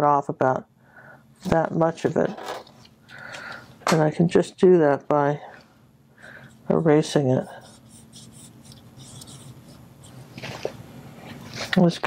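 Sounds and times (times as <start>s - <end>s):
paintbrush scrubbing scratchy strokes: 6.6s - 10.2s.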